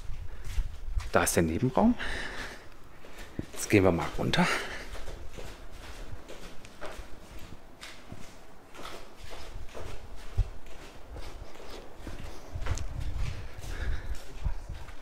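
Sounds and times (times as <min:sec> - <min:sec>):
flip-flop footsteps on stairs: 0:02.0 - 0:15.0.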